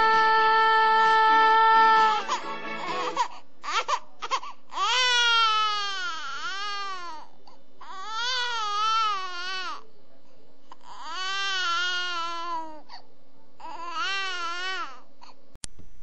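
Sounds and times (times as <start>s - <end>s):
background music: 0.0s - 3.4s
infant crying: 0.0s - 9.8s, 10.8s - 12.8s, 13.6s - 15.1s.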